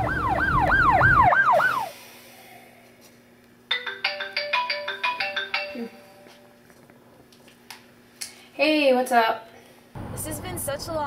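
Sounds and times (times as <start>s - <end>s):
phone ringtone chiming melody: 3.7s - 6.6s.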